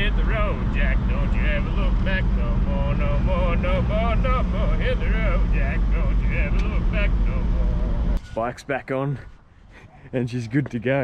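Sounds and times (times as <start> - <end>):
man singing: 0.0 - 7.6
engine and road noise in cab: 0.0 - 8.4.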